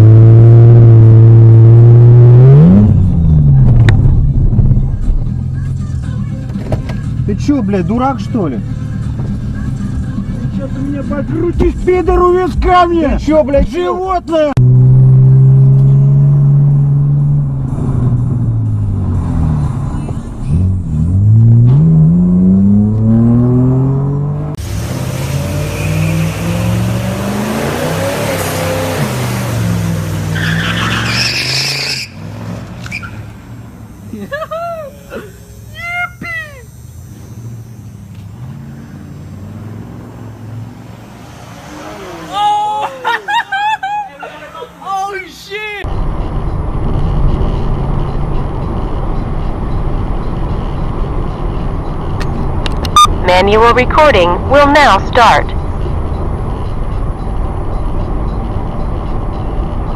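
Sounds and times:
car engine revving: 0:00.0 - 0:35.8, 0:36.6 - 0:43.3.

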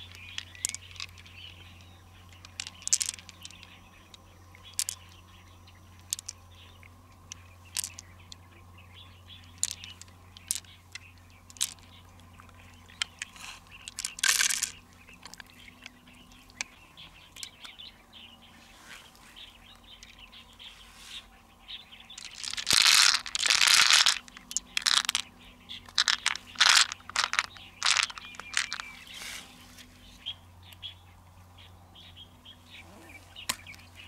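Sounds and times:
shells and beads clattering: 0:00.0 - 0:08.4, 0:09.3 - 0:17.7, 0:22.1 - 0:29.1.

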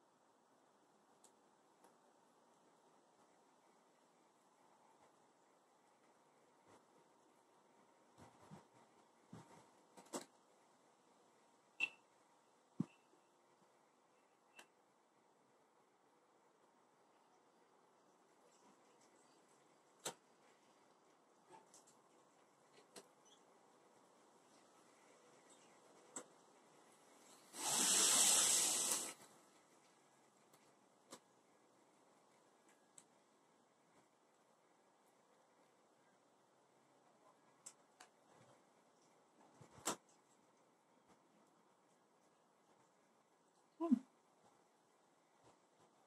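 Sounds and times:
hiss: 0:27.2 - 0:29.3.

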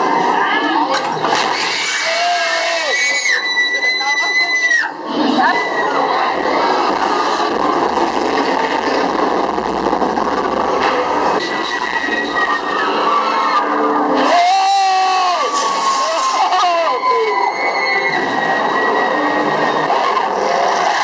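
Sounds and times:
high wailing tones: 0:00.4 - 0:21.0
dense even noise: 0:06.2 - 0:12.7.

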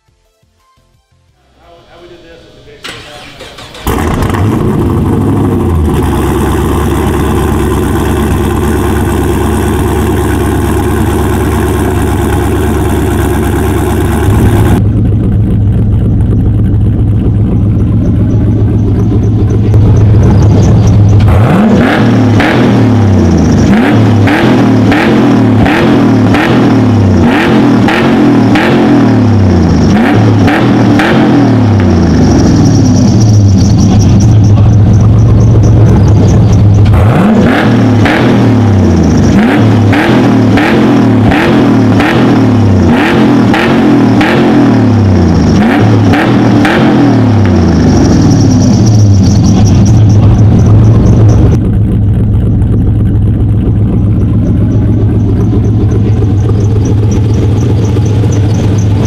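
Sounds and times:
car engine revving: 0:02.8 - 0:59.0.

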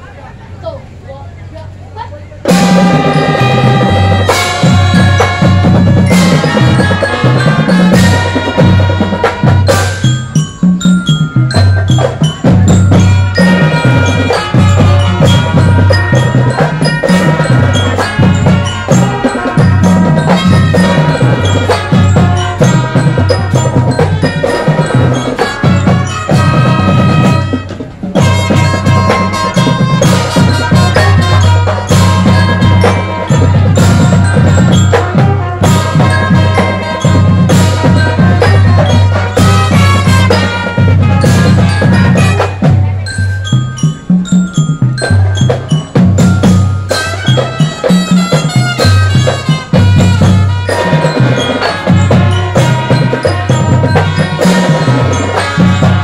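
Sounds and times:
marching band playing: 0:00.0 - 0:56.0.

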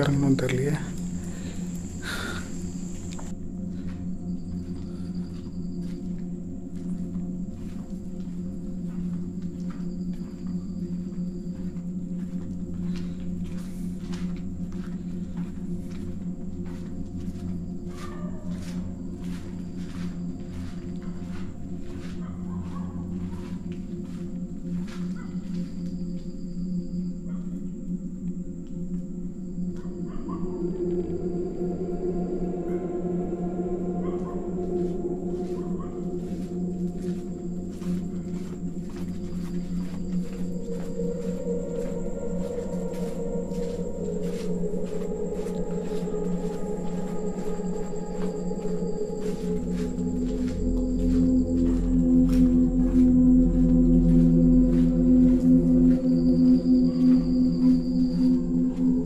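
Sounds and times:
low electronic drone: 0:00.0 - 0:59.0
thin high whine: 0:30.5 - 0:59.0.

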